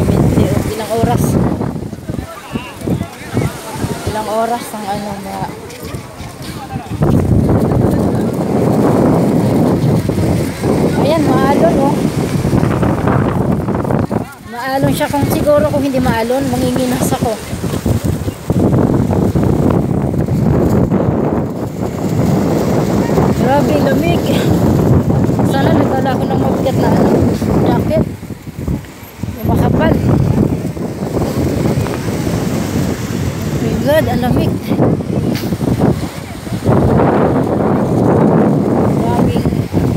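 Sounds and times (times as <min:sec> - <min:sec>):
waves on choppy sea: 0:00.0 - 0:39.9
wind buffeting microphone: 0:00.0 - 0:39.9.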